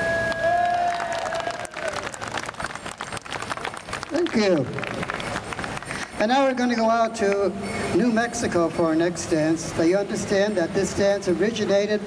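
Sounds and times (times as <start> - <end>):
audience clapping: 0.0 - 6.2.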